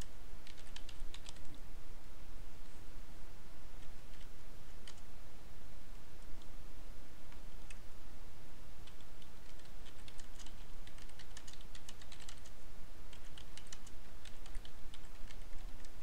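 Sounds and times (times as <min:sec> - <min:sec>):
computer keyboard typing: 0:00.0 - 0:01.6, 0:03.8 - 0:05.1, 0:08.8 - 0:16.0.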